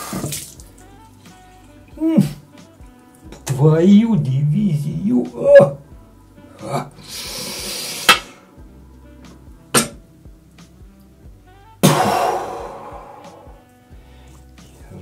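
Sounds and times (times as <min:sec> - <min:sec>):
faint background music: 0:00.0 - 0:15.0
man hissing breath: 0:06.5 - 0:08.6, 0:11.8 - 0:14.6
loud blown-out breath: 0:07.0 - 0:08.6, 0:11.8 - 0:14.4.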